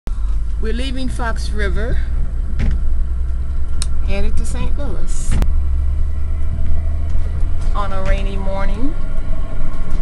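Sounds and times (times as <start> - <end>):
vehicle engine and road noise: 0.1 - 10.0.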